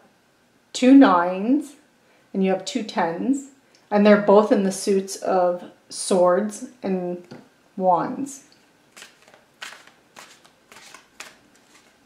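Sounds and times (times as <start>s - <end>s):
cards rustling and flicking: 8.9s - 12.0s.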